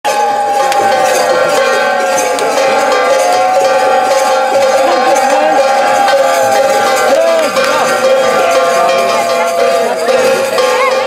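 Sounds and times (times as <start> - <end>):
bells ringing: 0.0 - 11.0.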